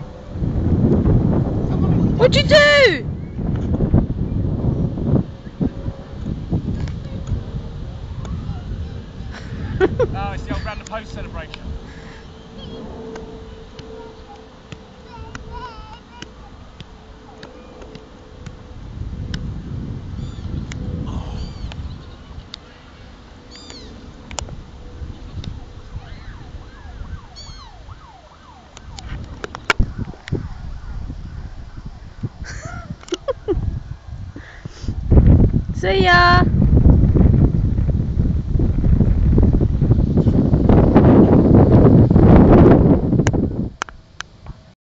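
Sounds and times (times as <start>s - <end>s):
wind rumbling on microphone: 0.0s - 44.7s
high-pitched falling call: 25.1s - 28.6s.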